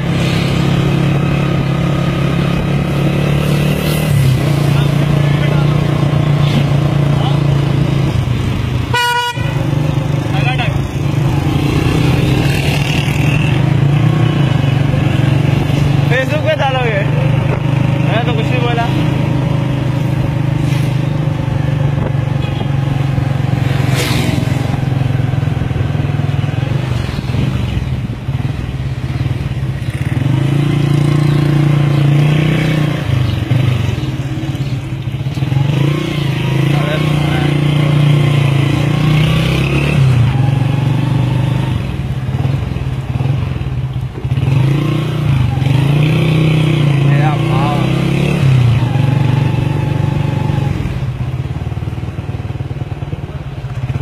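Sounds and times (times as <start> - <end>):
people talking: 4.6 - 5.9, 6.5 - 7.6, 10.3 - 10.8, 16.1 - 17.2, 18.1 - 19.0, 36.7 - 37.7, 47.0 - 47.9.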